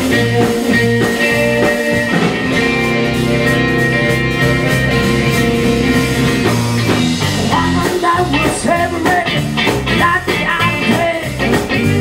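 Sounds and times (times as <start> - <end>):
live blues band: 0.0 - 12.0
lead singer: 7.3 - 12.0.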